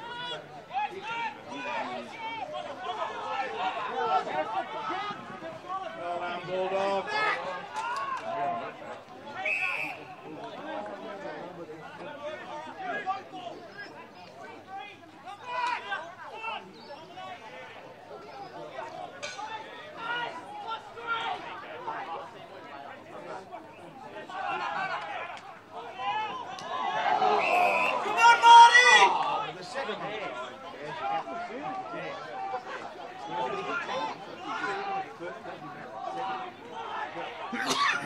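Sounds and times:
crowd chatter: 0.0s - 38.0s
people shouting: 24.2s - 29.5s.

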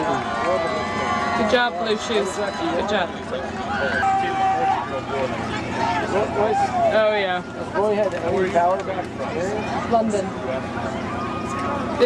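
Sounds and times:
people shouting: 0.0s - 7.8s.

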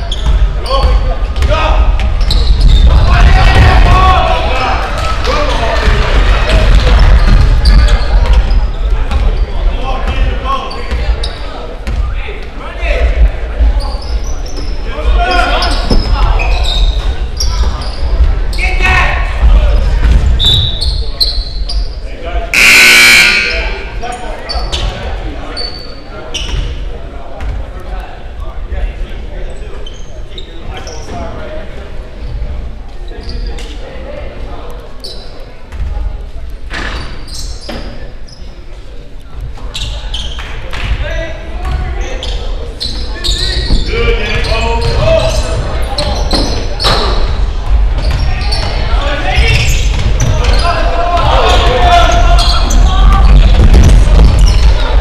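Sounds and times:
sneakers squeaking: 0.0s - 27.8s, 29.4s - 33.9s, 34.5s - 55.0s
echoing crowd chatter: 0.0s - 55.0s
shrill whistle blast: 22.6s - 23.8s.

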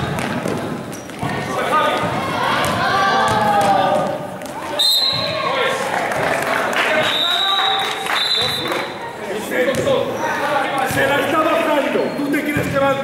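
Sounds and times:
referee's whistle blasts: 4.8s - 5.4s, 7.0s - 8.9s.

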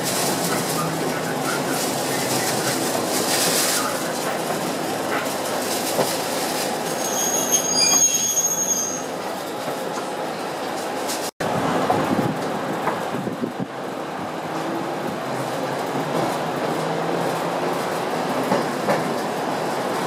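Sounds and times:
electric train rumbling: 0.0s - 20.0s
high-pitched brake squeal: 6.9s - 9.2s.

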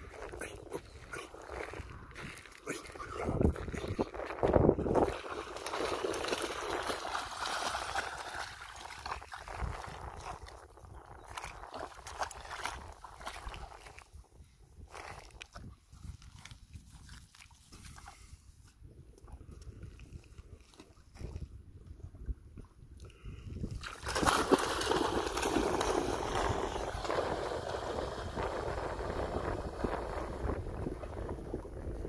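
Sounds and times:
dog splashing in water: 4.9s - 10.4s, 11.3s - 14.0s, 23.8s - 28.5s.

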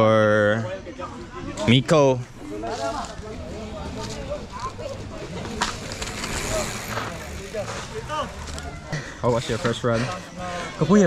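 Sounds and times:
spectators' voices: 0.0s - 11.0s
bike tyres scrubbing on dirt: 2.6s - 11.0s.

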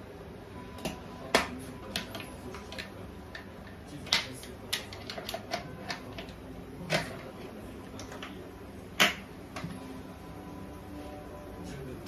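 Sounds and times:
kitchen items clicking and tapping: 0.8s - 8.4s.

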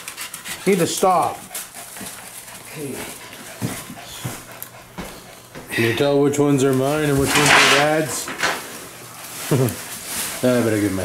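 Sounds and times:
puppy panting: 0.0s - 7.0s.

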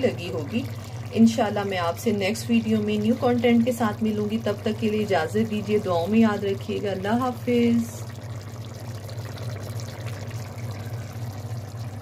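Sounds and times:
curry simmering in a pot: 0.0s - 12.0s
low hum: 0.0s - 12.0s.

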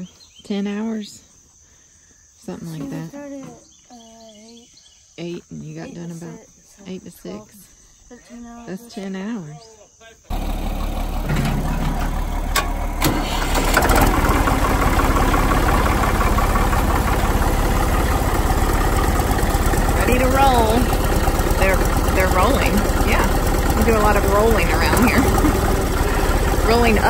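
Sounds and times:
person speaking: 5.5s - 9.7s, 21.6s - 27.0s
tractor diesel engine clattering: 10.3s - 27.0s.

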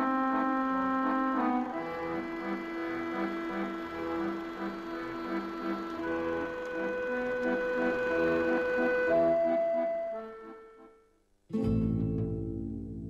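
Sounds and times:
instrumental title theme music: 0.0s - 13.0s.

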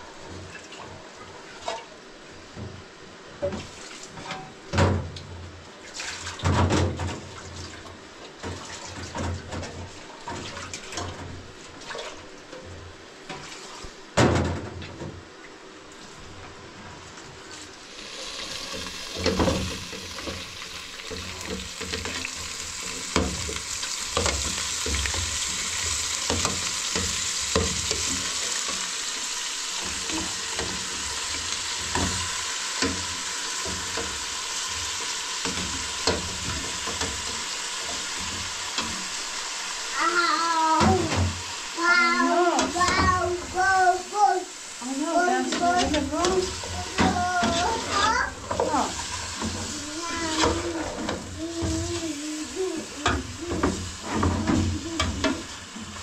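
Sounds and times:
meat and onions sizzling: 17.7s - 56.0s.

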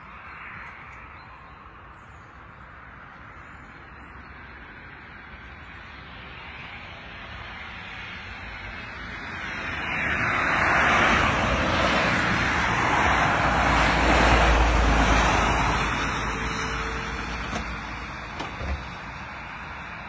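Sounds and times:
car passing by: 5.2s - 20.0s.

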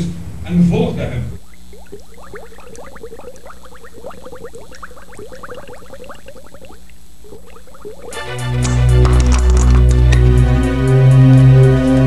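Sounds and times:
liquid bubbling and gurgling: 1.4s - 8.4s.

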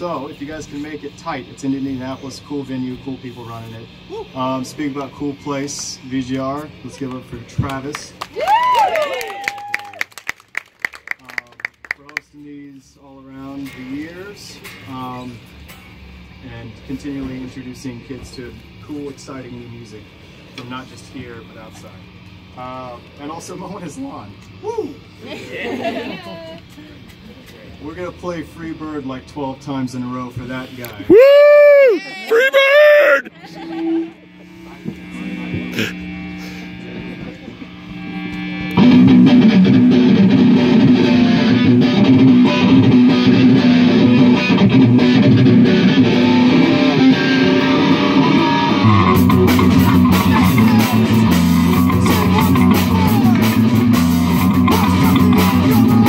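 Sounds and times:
amplifier hum: 0.0s - 10.1s, 12.4s - 56.0s
small audience clapping: 7.0s - 12.2s.

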